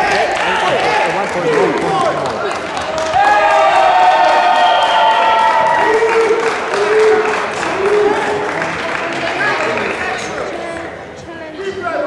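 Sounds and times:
crowd cheering and shouting: 0:00.0 - 0:10.5.

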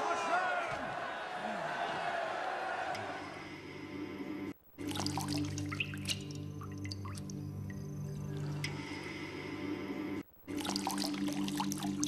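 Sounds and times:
water splashing in glass bowl: 0:04.8 - 0:07.4, 0:10.5 - 0:12.0.

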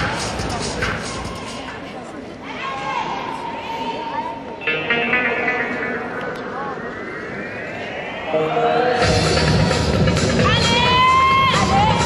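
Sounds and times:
rising pitch sweep: 0:04.6 - 0:10.3.

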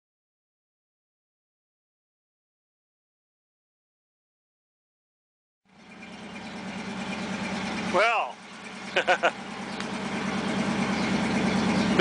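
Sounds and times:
motor humming: 0:05.7 - 0:12.0.

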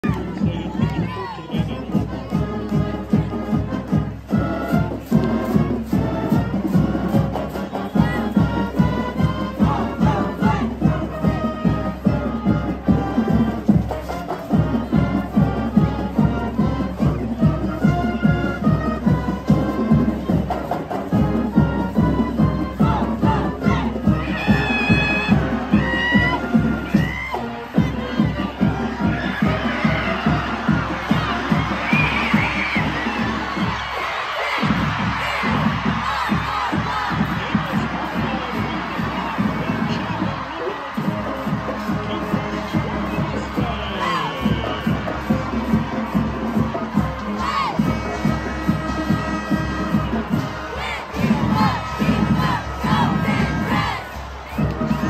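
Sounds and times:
marching band playing: 0:00.0 - 0:55.0
people shouting and cheering: 0:00.0 - 0:55.0.

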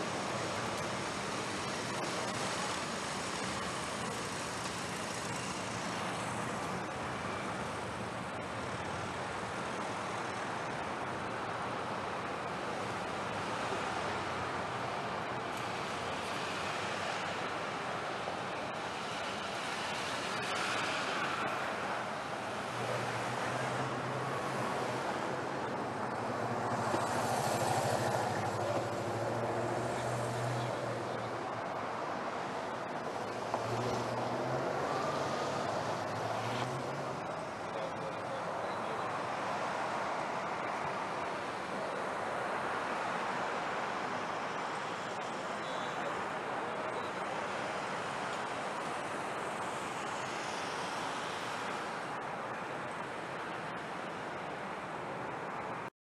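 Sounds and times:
tyres on road: 0:00.0 - 0:55.9
vehicle engines humming: 0:00.0 - 0:55.9
cars driving past: 0:12.9 - 0:55.9.

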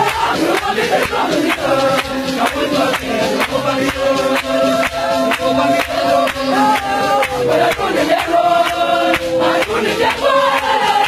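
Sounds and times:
group chant-like singing: 0:00.0 - 0:11.0
steady drum beat: 0:00.0 - 0:11.0.

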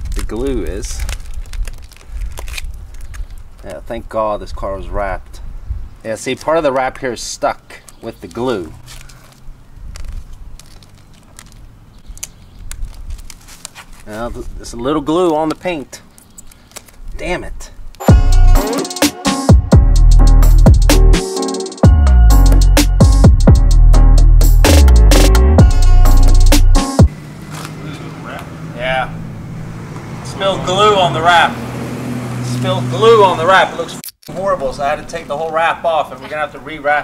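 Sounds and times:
plastic film crinkling as peeled: 0:00.0 - 0:03.7, 0:08.8 - 0:14.6, 0:16.1 - 0:17.2
faint rustles: 0:08.6 - 0:14.8
small glue clicks: 0:09.3 - 0:13.4
electronic music: 0:18.0 - 0:27.1.

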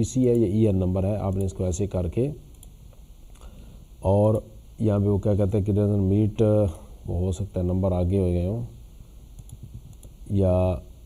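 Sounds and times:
faint keyboard typing clicks: 0:01.2 - 0:01.6, 0:02.5 - 0:03.5, 0:09.3 - 0:10.2.

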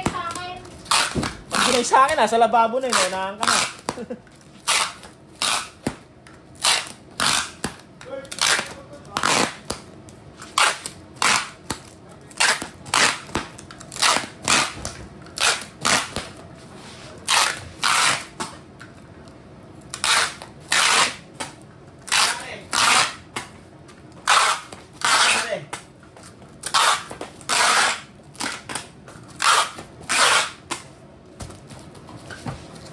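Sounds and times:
packing tape pulled off tape gun: 0:00.8 - 0:01.8, 0:04.6 - 0:05.8, 0:06.6 - 0:07.7, 0:08.3 - 0:09.8, 0:10.4 - 0:11.6, 0:13.9 - 0:16.2, 0:17.2 - 0:18.3, 0:19.9 - 0:21.2, 0:22.1 - 0:23.2, 0:24.2 - 0:25.5, 0:26.6 - 0:30.6.

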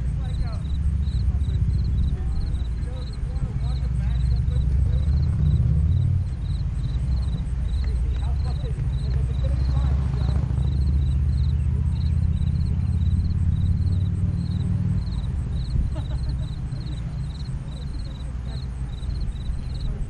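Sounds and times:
faint distant voices: 0:00.0 - 0:20.0
wind buffeting microphone: 0:00.0 - 0:20.0.

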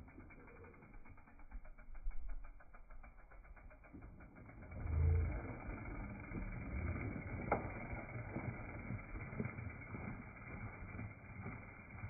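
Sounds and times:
bicycle freewheel ticking: 0:00.0 - 0:12.0
bike tyres rumbling on dirt: 0:01.1 - 0:12.0.

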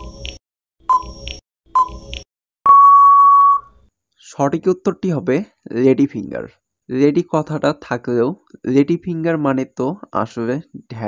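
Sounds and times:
long electronic beep: 0:02.7 - 0:03.8.

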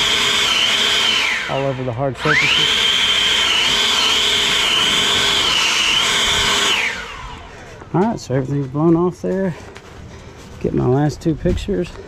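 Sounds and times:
leaf blower running: 0:00.0 - 0:08.2.

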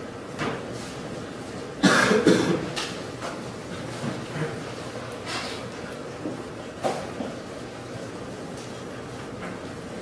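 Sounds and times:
person coughing: 0:01.8 - 0:02.7.

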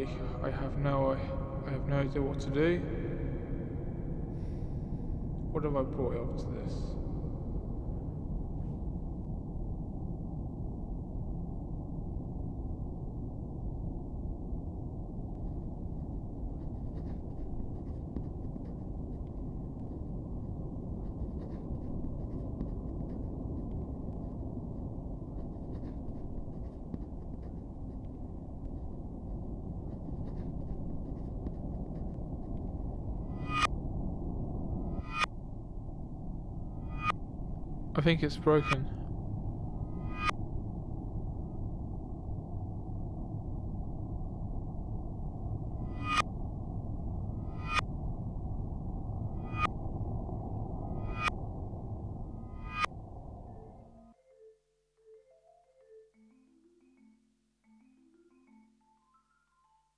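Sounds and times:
muffled low rumbling: 0:00.0 - 0:54.1
low dark drone: 0:00.0 - 0:54.2.

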